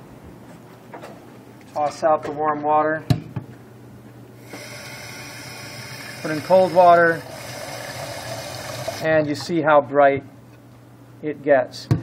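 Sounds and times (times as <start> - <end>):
faucet water running: 4.4 - 9.1.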